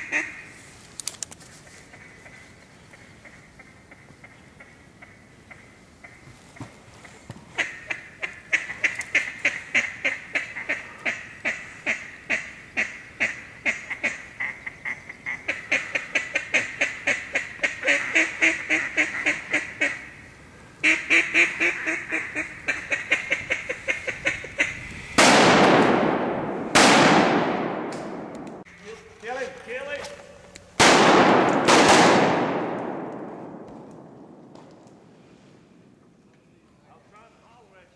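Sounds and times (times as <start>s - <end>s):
duck call quacking: 0.0s - 0.4s, 7.6s - 20.2s, 20.8s - 24.8s
shotgun shots with echo: 25.2s - 28.6s, 30.8s - 34.4s.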